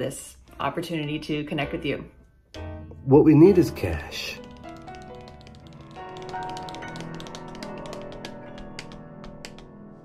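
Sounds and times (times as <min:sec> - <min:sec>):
piano playing held notes: 0:02.6 - 0:10.0
tap shoe taps: 0:06.2 - 0:09.7.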